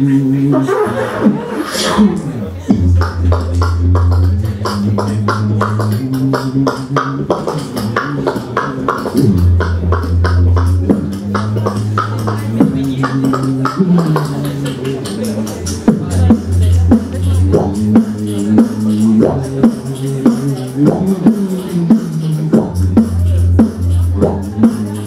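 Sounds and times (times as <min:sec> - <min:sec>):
beatboxing into a microphone: 0:00.0 - 0:25.0
hummed bass line: 0:00.0 - 0:25.0.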